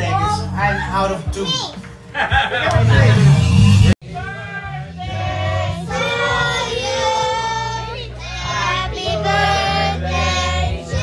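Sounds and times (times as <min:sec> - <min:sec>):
steady low backing: 0:00.0 - 0:11.0
high-pitched voices singing: 0:02.7 - 0:11.0.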